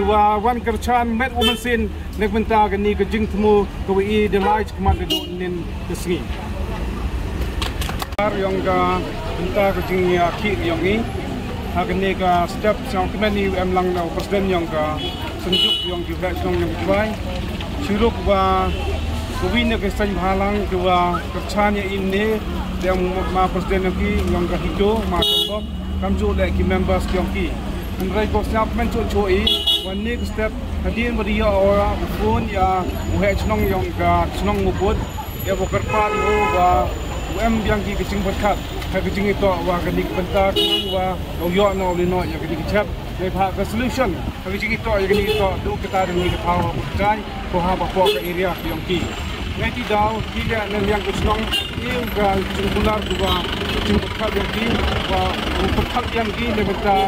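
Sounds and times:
man speaking: 0:00.0 - 0:06.4, 0:08.2 - 0:17.2, 0:17.8 - 0:18.8, 0:19.4 - 0:57.0
man talking: 0:00.0 - 0:06.4, 0:08.1 - 0:17.2, 0:17.8 - 0:18.8, 0:19.4 - 0:57.0
street traffic rumble: 0:00.0 - 0:57.0
vehicle horn toot: 0:01.4 - 0:01.7, 0:15.0 - 0:16.0, 0:25.2 - 0:25.6, 0:29.4 - 0:30.0, 0:35.7 - 0:36.8, 0:40.6 - 0:41.0.

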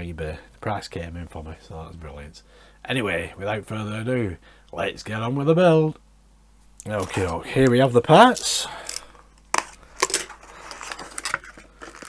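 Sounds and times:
cardboard scraping and crackling: 0:06.9 - 0:12.0.

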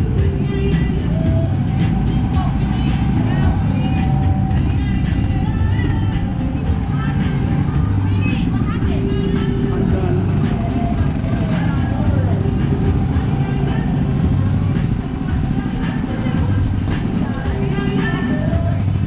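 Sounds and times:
go-kart engine running: 0:00.0 - 0:19.0
heavy wind noise: 0:00.0 - 0:19.0
people's voices: 0:00.0 - 0:19.0.

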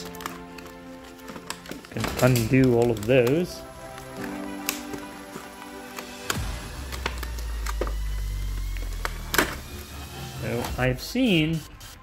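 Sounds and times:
plastic packaging clicks and taps: 0:00.0 - 0:09.8
sustained tone background music: 0:00.0 - 0:11.8.

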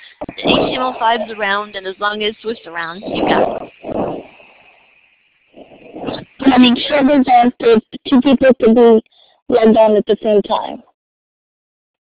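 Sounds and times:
voice on call line: 0:00.0 - 0:04.4, 0:05.6 - 0:10.9.

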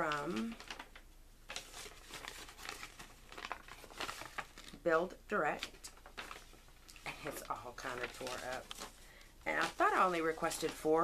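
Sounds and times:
paper envelope crinkling: 0:00.0 - 0:11.0.

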